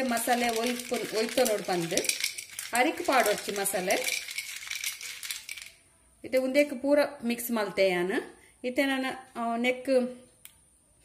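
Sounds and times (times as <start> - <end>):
legumes rattling on a steel plate: 0.0 - 5.8.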